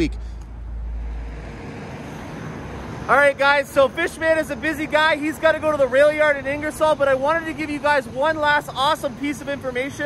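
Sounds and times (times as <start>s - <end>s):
road traffic hiss: 0.0s - 10.0s.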